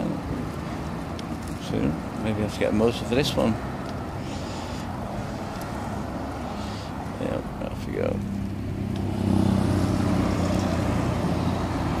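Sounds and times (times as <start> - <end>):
van driving past: 2.2 - 12.0
car driving past: 8.4 - 12.0.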